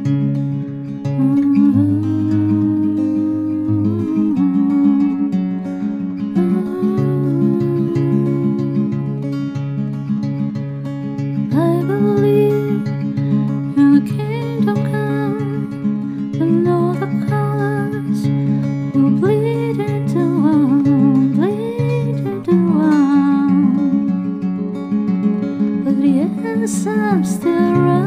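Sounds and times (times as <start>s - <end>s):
acoustic guitar playing: 0.0s - 28.0s.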